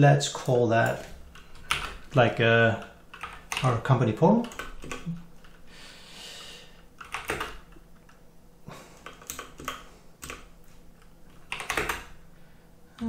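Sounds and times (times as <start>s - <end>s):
computer keyboard typing: 0.4s - 5.6s, 7.0s - 8.2s, 9.0s - 12.2s.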